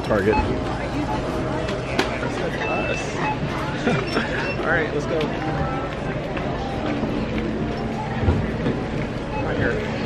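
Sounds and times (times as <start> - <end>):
shop background noise: 0.0 - 10.0.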